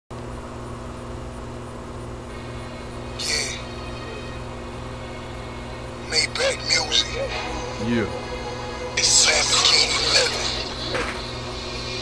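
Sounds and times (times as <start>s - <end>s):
low mechanical hum: 0.1s - 12.0s.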